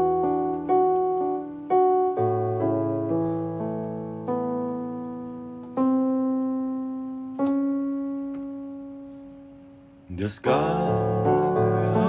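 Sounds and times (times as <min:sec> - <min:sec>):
piano chords ringing: 0:00.0 - 0:12.0.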